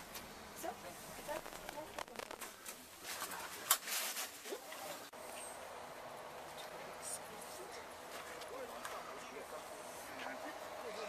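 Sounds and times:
sharp crack: 1.2 - 2.6.

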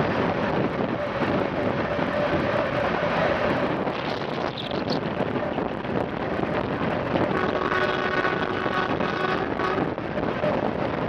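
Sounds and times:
train running noise: 0.0 - 11.0
wind rush on microphone: 0.0 - 11.0.

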